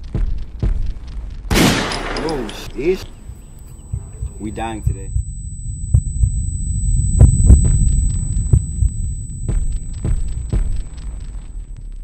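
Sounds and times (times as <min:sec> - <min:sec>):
heartbeat thumps: 0:00.0 - 0:01.5, 0:02.7 - 0:12.0
low rumble: 0:00.0 - 0:12.0.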